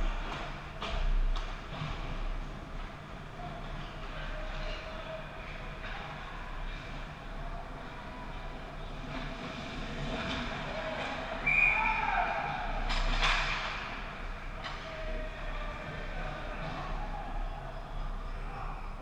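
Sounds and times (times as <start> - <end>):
skates scraping ice: 7.8 - 14.8.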